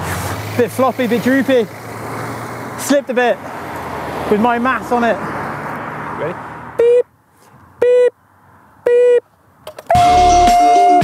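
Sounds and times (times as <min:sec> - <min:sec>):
electronic countdown beeps: 0:06.8 - 0:07.1, 0:07.8 - 0:08.2, 0:08.9 - 0:09.2
music: 0:09.9 - 0:11.0.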